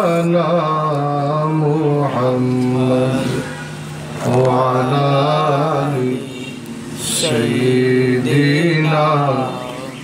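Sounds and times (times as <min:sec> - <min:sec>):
man chanting in long held notes: 0:00.0 - 0:10.0.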